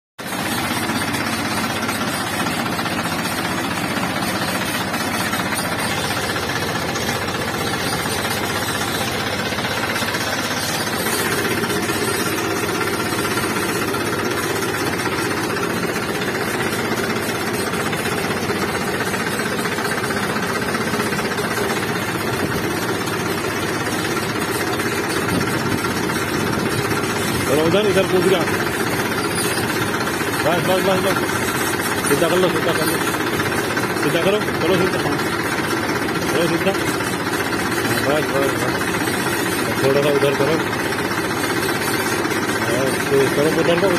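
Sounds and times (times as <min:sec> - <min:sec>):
diesel tractor engine rattling: 0:00.2 - 0:43.9.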